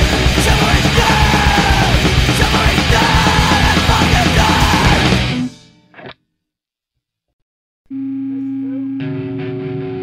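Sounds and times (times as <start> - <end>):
drums: 0.0 - 5.7
punk rock band: 0.0 - 5.7
shouted vocals: 0.2 - 5.2.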